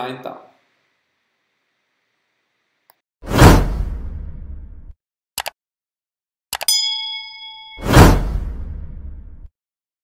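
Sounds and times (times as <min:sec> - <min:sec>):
whoosh sound effect: 0:07.8 - 0:09.2.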